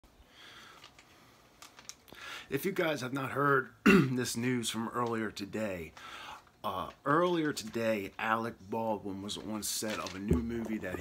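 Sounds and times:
soft breath: 0:00.2 - 0:01.5, 0:06.0 - 0:06.5.

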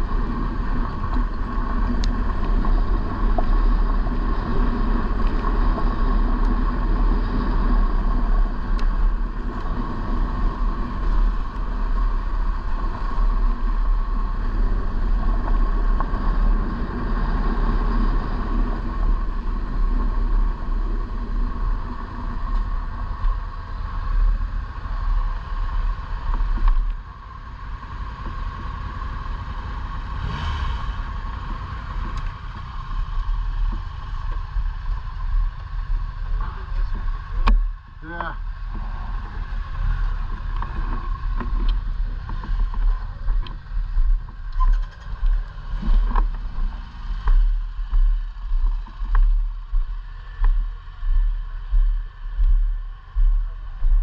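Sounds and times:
motorcycle engine running: 0:00.0 - 0:54.0
wind and road noise: 0:00.0 - 0:54.0.

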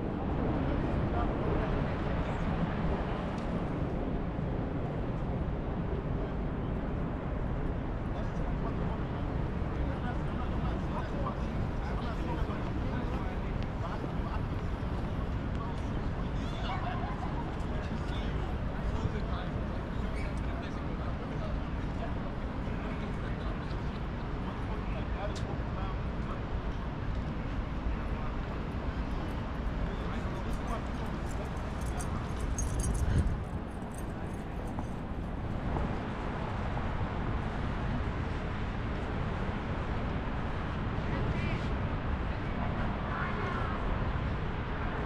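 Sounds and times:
passers-by talking: 0:00.0 - 0:45.0
traffic rumble: 0:00.0 - 0:45.0.

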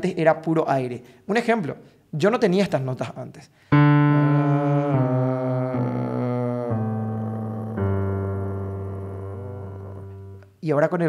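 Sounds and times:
low piano notes descending: 0:03.7 - 0:10.5.

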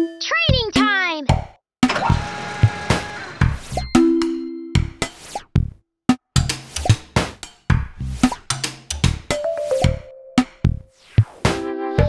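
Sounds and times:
children's jingle: 0:00.0 - 0:01.3, 0:09.4 - 0:10.4.

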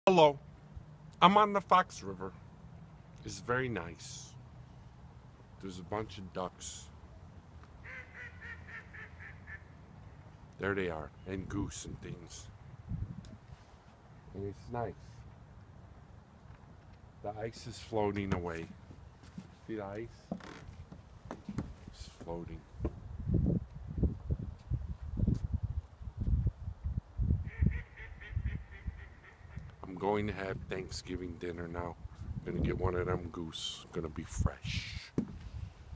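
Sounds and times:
ducks quacking: 0:07.8 - 0:09.8
geese honking: 0:07.8 - 0:09.8.

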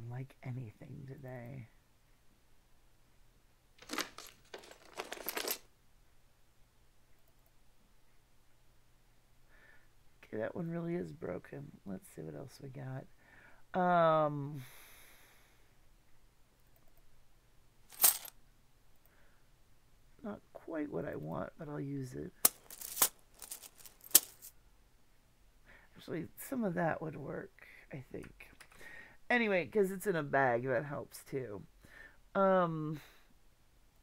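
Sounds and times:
coins clinking and rattling: 0:03.8 - 0:05.7, 0:17.9 - 0:18.3, 0:22.4 - 0:24.5.

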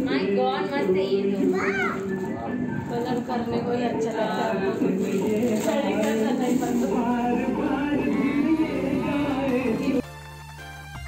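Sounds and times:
background music: 0:00.0 - 0:11.0.

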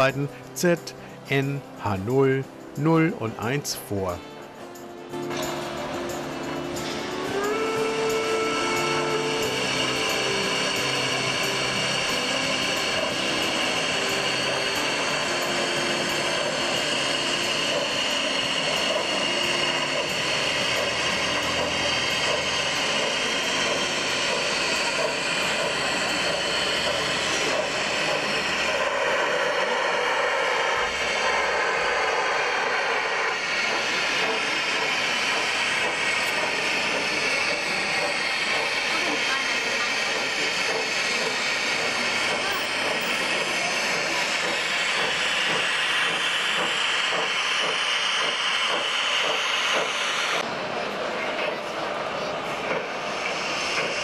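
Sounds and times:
model steam locomotive hissing: 0:00.0 - 0:54.0.

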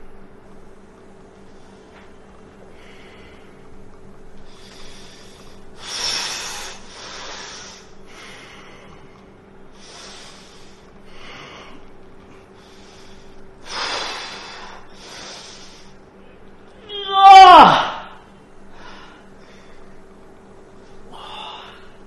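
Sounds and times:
steady low hum: 0:00.0 - 0:22.0
man breathing hard: 0:02.7 - 0:03.7, 0:04.5 - 0:11.9, 0:12.5 - 0:16.0, 0:21.1 - 0:22.0.

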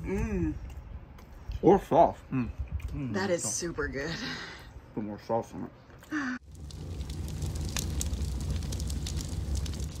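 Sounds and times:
fire crackling: 0:06.4 - 0:10.0
steady low rumble: 0:06.4 - 0:10.0.

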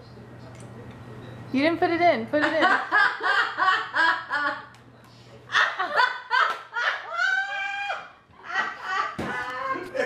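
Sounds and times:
people laughing: 0:02.4 - 0:04.8, 0:05.4 - 0:10.0.

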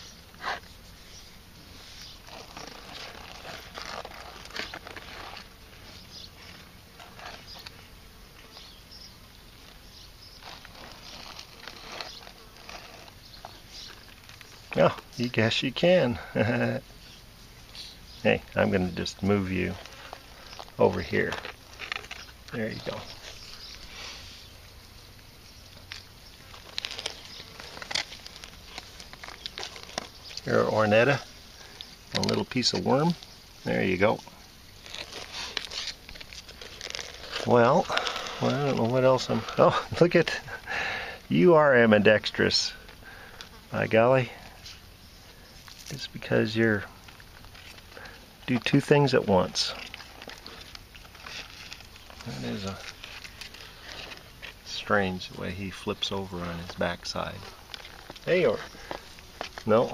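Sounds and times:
scratching and rustling on soil: 0:00.0 - 0:59.9.

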